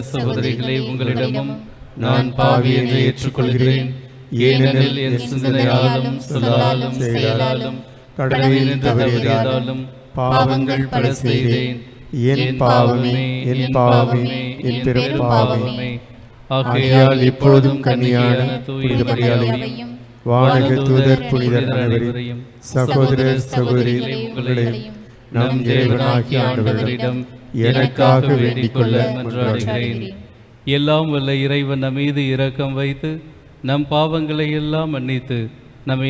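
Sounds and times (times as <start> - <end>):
man reading aloud: 0.0 - 24.8, 25.4 - 36.0
man chanting a prayer: 0.0 - 36.0.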